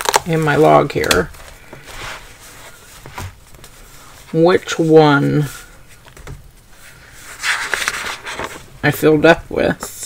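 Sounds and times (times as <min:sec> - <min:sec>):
notebook page turning: 0:04.8 - 0:08.7.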